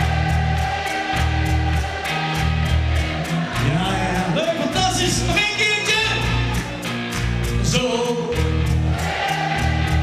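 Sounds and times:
voices singing: 0.0 - 5.0, 8.9 - 10.0
bass line: 0.0 - 10.0
steady drum beat: 0.0 - 10.0.

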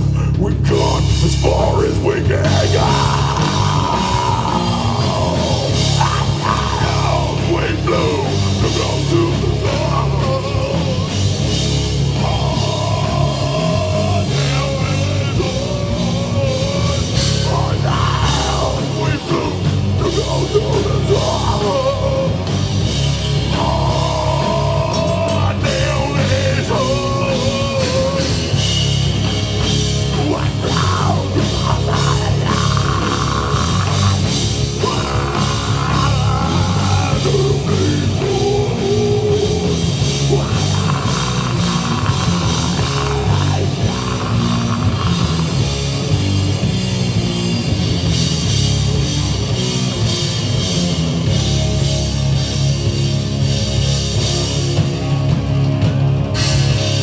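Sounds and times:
bass guitar: 0.0 - 57.0
distorted electric guitars: 0.0 - 57.0
drum kit beat: 0.0 - 57.0.

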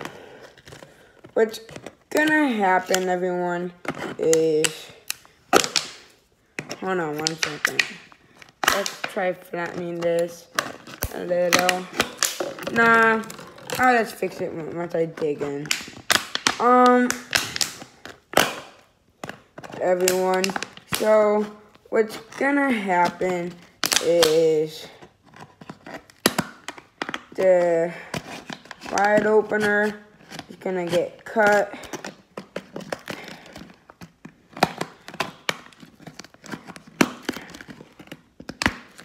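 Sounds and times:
plastic bottle crackling: 0.0 - 39.0
person speaking: 1.4 - 5.7, 6.6 - 17.7, 19.7 - 25.0, 27.3 - 28.1, 28.8 - 32.0.

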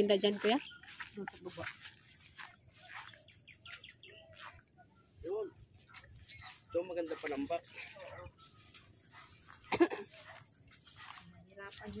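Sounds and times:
faint bird chirps: 2.1 - 9.7.

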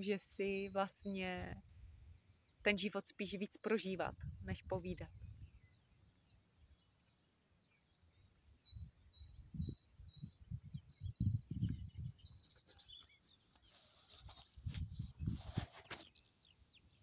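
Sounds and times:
birds chirping faintly: 0.0 - 17.0
wind buffeting on microphone: 4.0 - 5.8, 8.6 - 13.0, 14.5 - 15.9.

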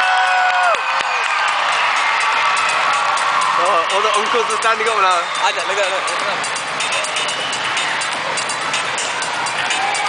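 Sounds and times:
crowd cheering and applauding: 0.0 - 10.0.

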